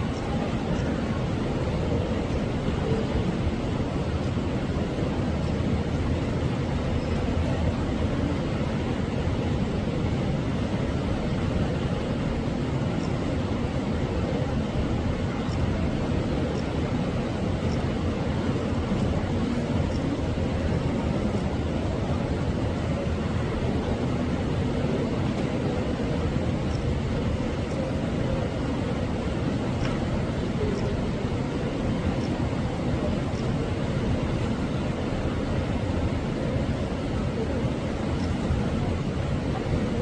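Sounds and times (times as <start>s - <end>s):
low rumbling background noise: 0.0s - 40.0s.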